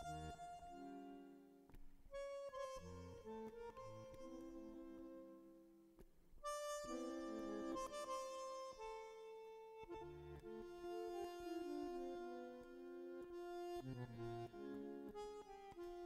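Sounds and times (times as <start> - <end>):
bandoneon playing chords and melody: 0.0 - 1.4, 2.1 - 5.4, 6.4 - 16.0.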